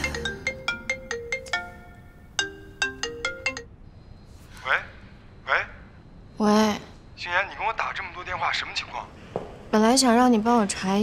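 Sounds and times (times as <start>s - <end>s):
phone ringtone melody: 0.0s - 3.8s.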